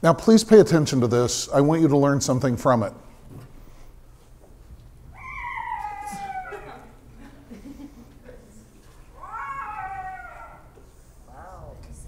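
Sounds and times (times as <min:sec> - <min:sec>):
cat meowing: 0:05.1 - 0:07.0, 0:09.2 - 0:10.7.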